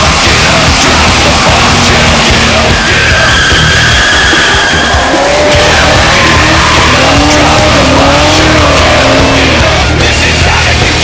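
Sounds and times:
tyres screeching: 0.0 - 10.7
car engine at high revs: 0.0 - 11.0
loud music: 0.0 - 11.0.

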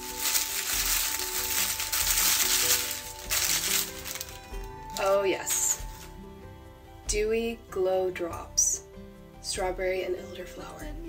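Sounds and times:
paper packaging crinkling: 0.0 - 6.2
background music: 0.0 - 11.0.

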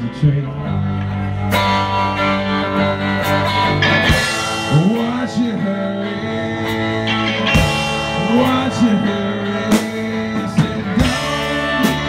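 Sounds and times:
band playing instrumental: 0.0 - 12.0
lead guitar: 0.0 - 12.0.

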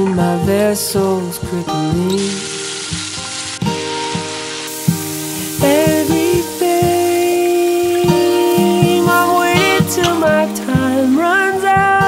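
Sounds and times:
background song with singing: 0.0 - 2.8, 4.9 - 12.0
peppers sizzling in a frying pan: 2.1 - 12.0.

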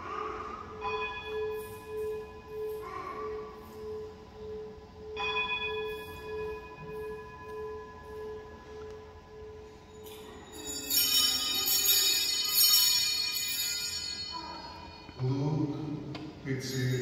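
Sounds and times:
bell ringing: 0.7 - 15.4, 16.5 - 17.0.

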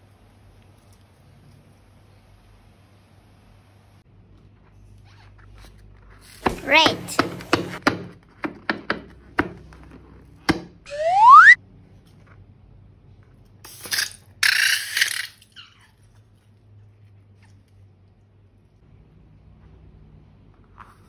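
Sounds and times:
cartoon slide whistle: 10.9 - 11.6.

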